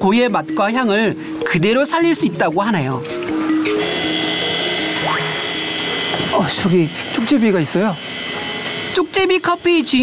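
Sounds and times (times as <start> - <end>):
background music: 0.0 - 10.0
coffee grinder motor whine: 3.6 - 10.0.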